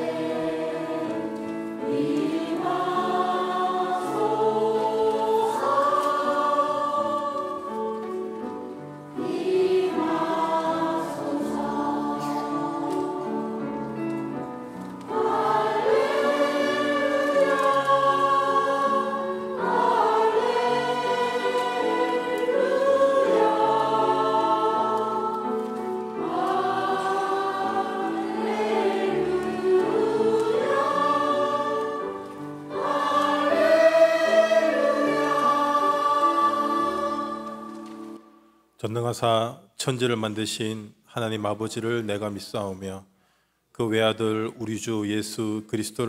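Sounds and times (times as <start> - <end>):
church choir singing: 0.0 - 38.6.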